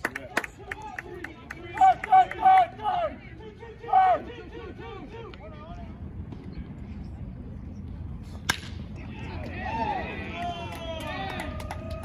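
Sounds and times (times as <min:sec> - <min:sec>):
baseball bat hitting ball: 0:08.4 - 0:08.9.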